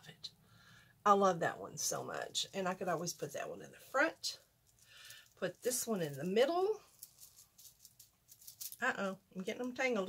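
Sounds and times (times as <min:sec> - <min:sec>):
woman speaking: 0:00.0 - 0:00.3, 0:01.1 - 0:04.4, 0:05.4 - 0:06.9, 0:08.8 - 0:10.0
bracelets clicking and rattling: 0:06.9 - 0:08.8.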